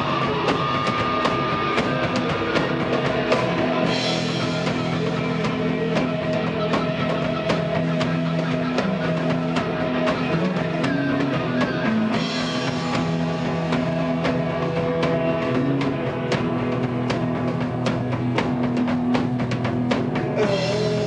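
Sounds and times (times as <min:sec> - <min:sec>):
live rock band instrumental: 0:00.0 - 0:21.0.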